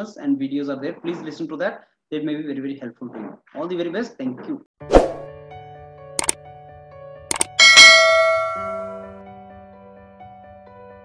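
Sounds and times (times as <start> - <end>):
double mouse click: 7.3 - 7.6
bright bell ding: 7.3 - 9.1.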